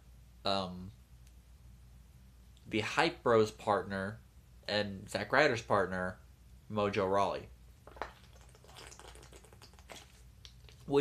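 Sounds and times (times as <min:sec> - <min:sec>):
plastic water bottle crackling: 0:07.8 - 0:11.0
person swallowing: 0:07.9 - 0:10.8.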